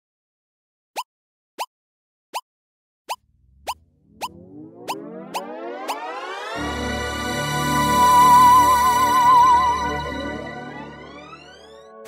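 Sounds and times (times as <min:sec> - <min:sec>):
cartoon pop blips: 0:03.1 - 0:06.2
rising synth music swell: 0:03.8 - 0:12.0.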